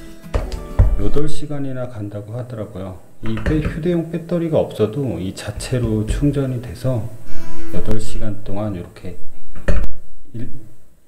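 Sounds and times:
hard objects knocking: 3.2 - 3.9, 5.4 - 6.7.

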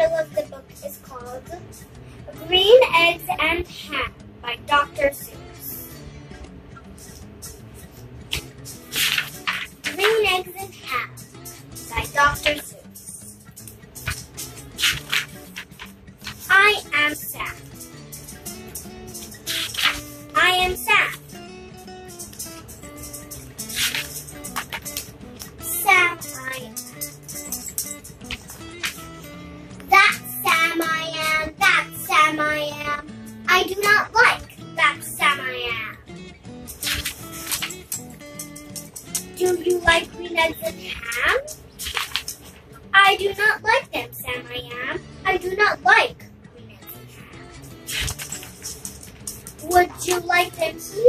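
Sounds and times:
child reading aloud: 0.0 - 1.7, 2.3 - 5.9, 9.8 - 11.2, 11.9 - 13.2, 16.4 - 17.6, 20.3 - 21.2, 25.6 - 26.8, 29.9 - 36.0, 39.4 - 41.5, 42.9 - 47.1, 49.6 - 51.0
background music: 0.0 - 51.0.

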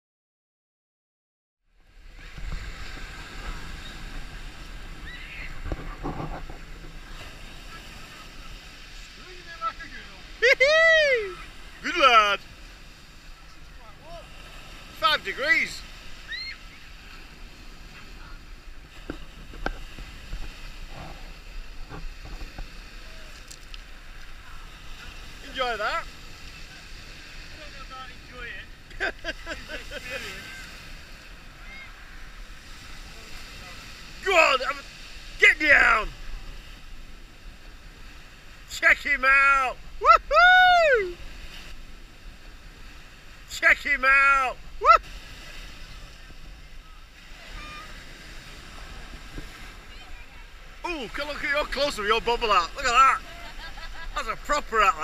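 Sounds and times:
waves breaking on pebble beach: 1.8 - 55.0
voices of swimmers: 1.9 - 55.0
person crying out: 10.4 - 11.4, 40.0 - 41.2, 44.8 - 45.0.

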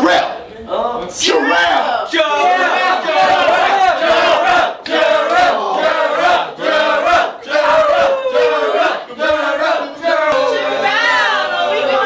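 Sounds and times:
crowd shouting and cheering: 1.2 - 12.0.

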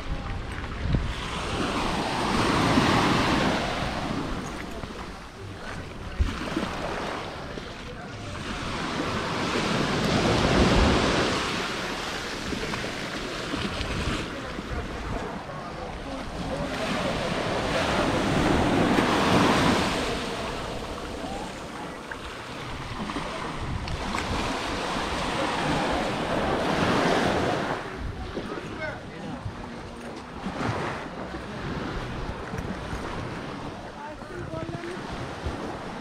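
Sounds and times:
wind buffeting microphone: 0.0 - 22.0, 22.6 - 36.0
small waves washing on shore: 0.0 - 36.0.

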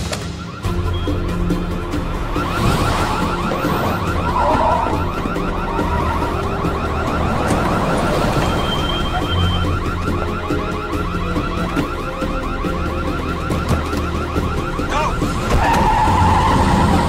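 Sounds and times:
car alarm: 0.0 - 17.0.

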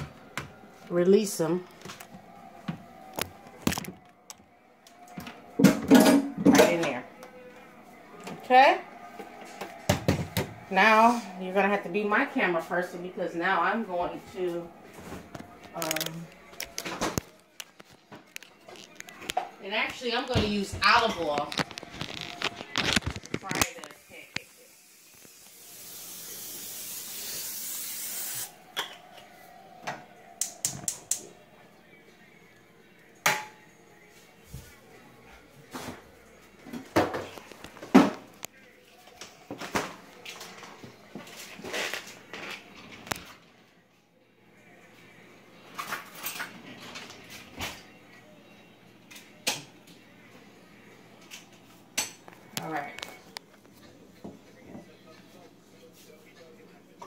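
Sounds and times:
kitchenware clicks and knocks: 5.6 - 7.0
cooking spray hissing from can: 23.9 - 28.6.

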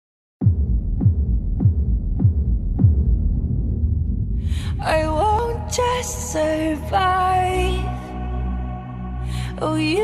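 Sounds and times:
deep bass hits: 0.4 - 5.8.

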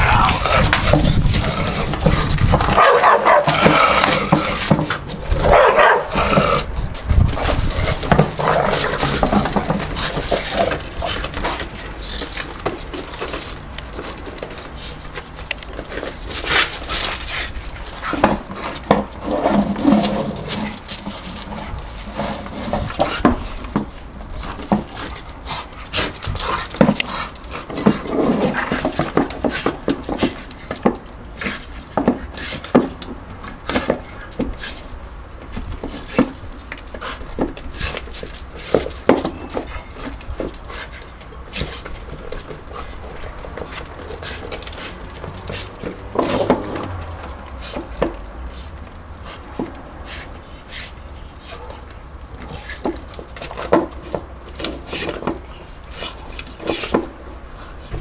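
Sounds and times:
dog panting: 39.4 - 53.9.

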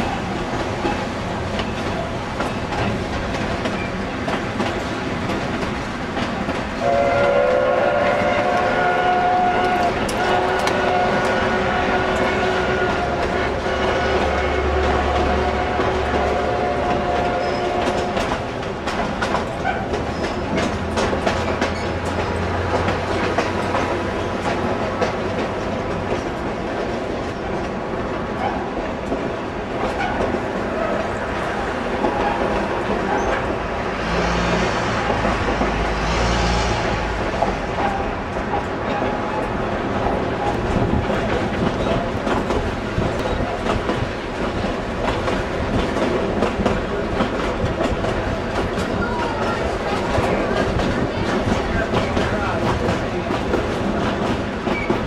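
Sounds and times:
train wheels clattering on rails: 0.0 - 55.0.

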